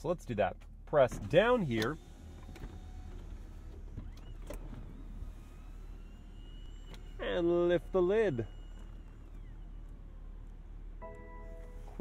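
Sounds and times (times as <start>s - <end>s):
car engine idling: 0.2s - 12.0s
motor whirring: 1.7s - 10.8s.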